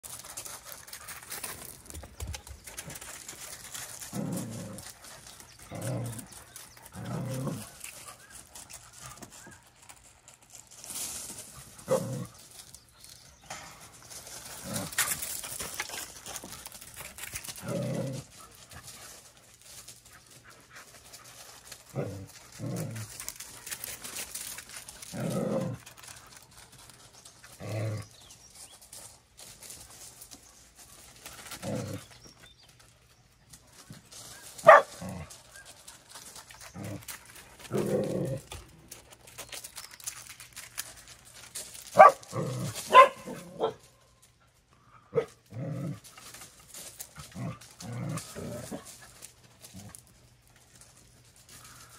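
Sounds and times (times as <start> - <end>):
paws crunching on gravel: 0.0 - 51.9
dogs woofing and grumbling: 2.7 - 9.5, 11.8 - 12.5, 14.4 - 26.4, 31.3 - 32.4, 34.6 - 39.4, 42.0 - 43.8, 47.2 - 50.0.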